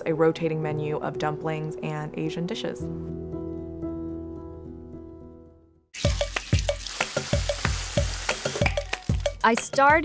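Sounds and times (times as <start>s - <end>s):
tofu sizzling in frying pan: 6.0s - 9.2s
background music with steady beat: 6.0s - 10.0s.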